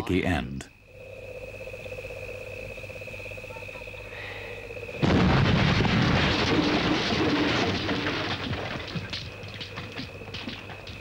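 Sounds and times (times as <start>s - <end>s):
frogs calling: 0.0s - 5.6s, 8.4s - 11.0s
insects calling: 0.0s - 11.0s.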